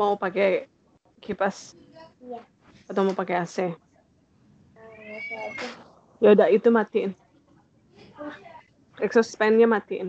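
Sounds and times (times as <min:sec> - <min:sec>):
cat meowing: 0:04.8 - 0:05.8.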